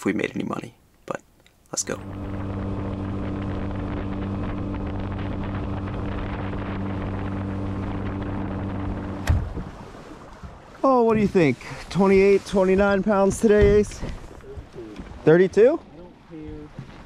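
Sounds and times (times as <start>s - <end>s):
outboard engine hum: 1.8s - 17.0s
water and wind rushing: 1.8s - 17.0s.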